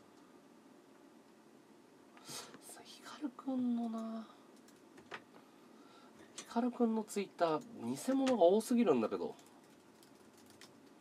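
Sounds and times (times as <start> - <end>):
man whispering: 2.6 - 3.4.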